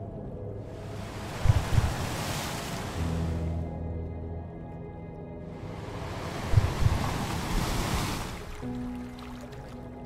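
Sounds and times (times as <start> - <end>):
soft sustained background music: 0.0 - 10.0
sea waves washing: 0.7 - 3.6, 5.6 - 10.0
low thumps: 1.4 - 2.2.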